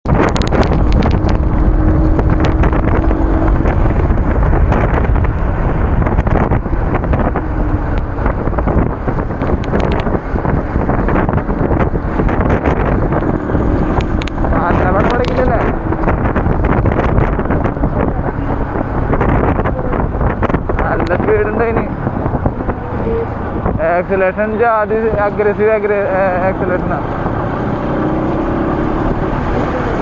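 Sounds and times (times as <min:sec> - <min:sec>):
road and traffic noise: 0:00.0 - 0:30.0
wind buffeting microphone: 0:00.0 - 0:30.0.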